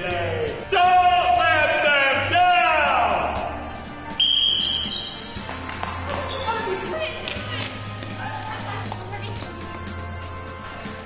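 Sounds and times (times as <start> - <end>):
music: 0.0 - 11.0
sports whistle blast: 4.2 - 5.3.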